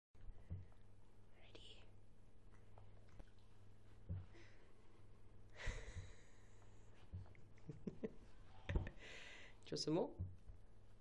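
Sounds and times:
low steady hum: 0.2 - 11.0
faint whispery voice: 1.3 - 2.0.

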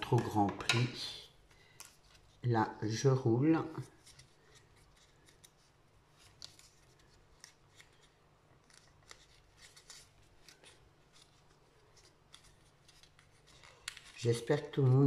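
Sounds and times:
card paper crackling and rustling: 1.4 - 2.5, 3.7 - 15.0.

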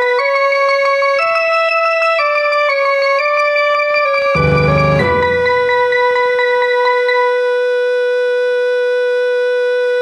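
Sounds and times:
held electronic woodwind note: 4.3 - 6.7.

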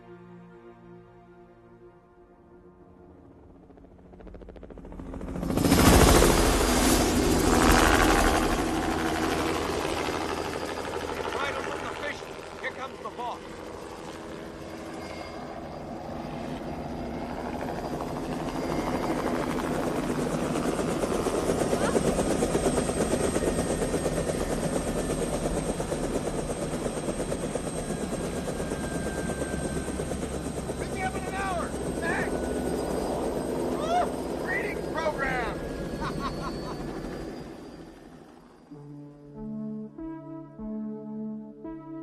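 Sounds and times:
helicopter rotor chop: 3.4 - 38.7.

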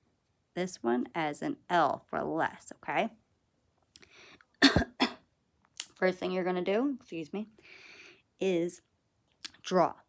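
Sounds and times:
woman coughing: 4.6 - 5.3.

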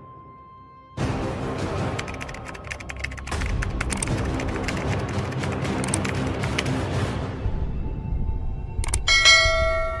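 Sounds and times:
bell ringing: 9.0 - 10.0.

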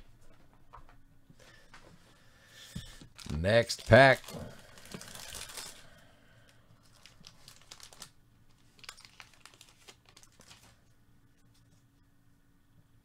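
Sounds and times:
wrapper tearing and crinkling: 3.2 - 5.8, 6.9 - 10.8.

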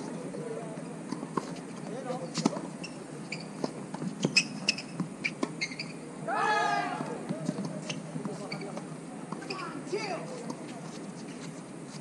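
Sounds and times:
shoe squeals on court: 2.2 - 6.0, 7.8 - 8.8.

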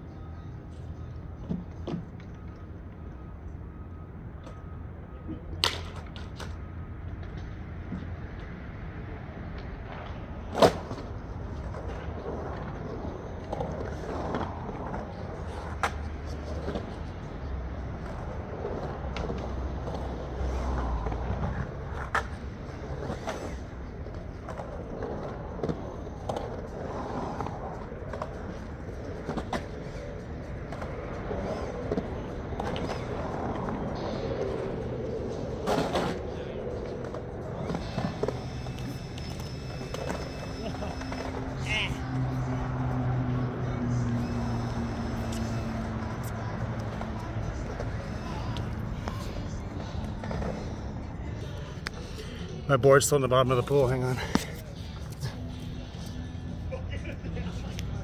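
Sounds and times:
skateboard clacks: 5.6 - 8.5, 9.5 - 41.5
skateboard wheels rumbling on concrete: 9.7 - 41.6.

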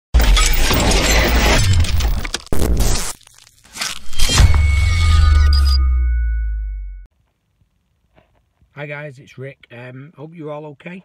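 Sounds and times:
shattering sound effect: 0.2 - 6.9.

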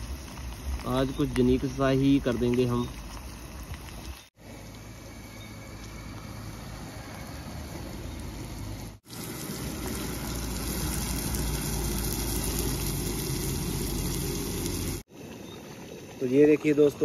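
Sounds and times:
onions and tomatoes sizzling in oil: 0.0 - 15.1.

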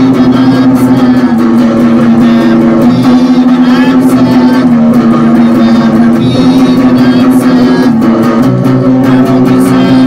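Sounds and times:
electric guitar strummed loudly: 0.0 - 10.0.

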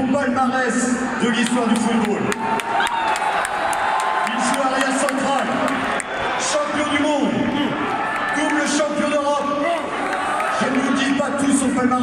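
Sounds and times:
man speaking over public address: 0.0 - 2.4, 4.2 - 12.0.

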